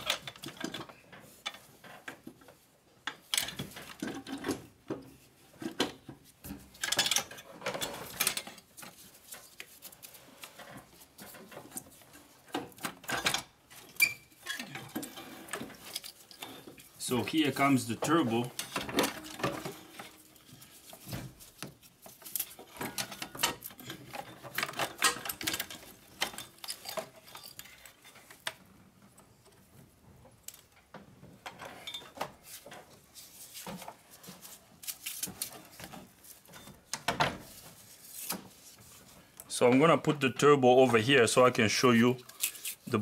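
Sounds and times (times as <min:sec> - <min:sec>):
metallic clinks and knocks: 0:18.5 - 0:20.8, 0:22.0 - 0:28.5.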